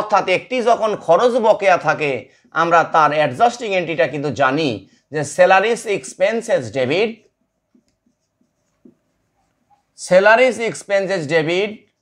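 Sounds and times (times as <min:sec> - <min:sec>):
marker pen writing on whiteboard: 0:00.0 - 0:12.0.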